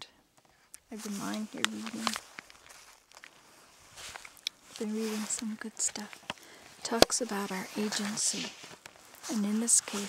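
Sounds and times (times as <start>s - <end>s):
faint rustling: 0.4s - 10.0s.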